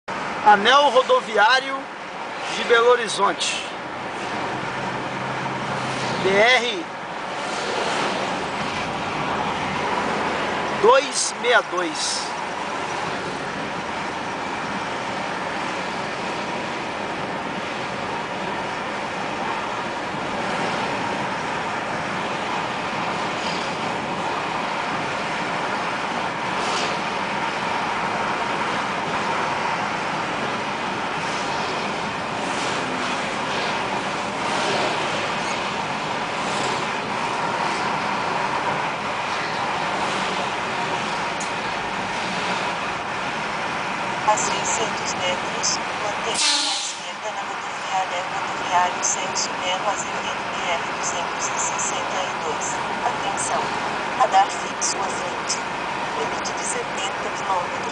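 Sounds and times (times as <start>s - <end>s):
car road noise: 0.0s - 57.9s
passing traffic hiss: 46.1s - 47.9s.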